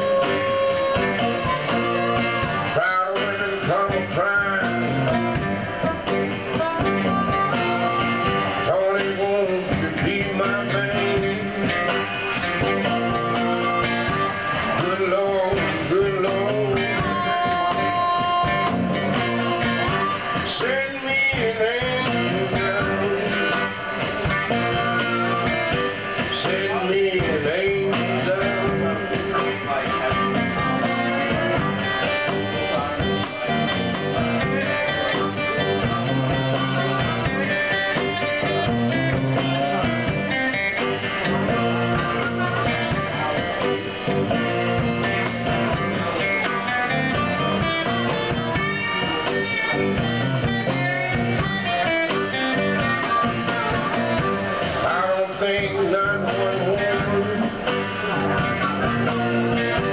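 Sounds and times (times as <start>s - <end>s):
harmonica solo: 0.0s - 9.0s, 10.4s - 26.3s, 28.4s - 54.9s
acoustic and electric guitars: 0.0s - 59.9s
drum kit: 0.0s - 59.9s.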